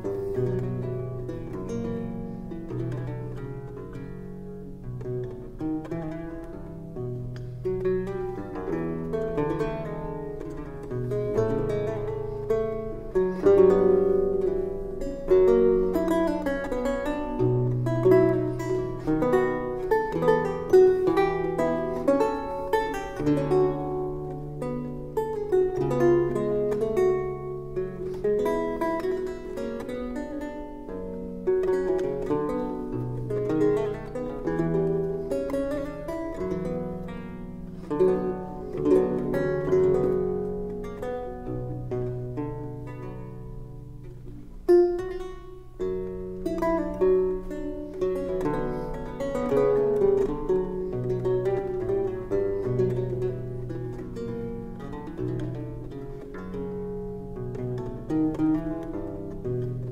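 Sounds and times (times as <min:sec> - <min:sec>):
solo lute playing: 0:00.0 - 0:59.9.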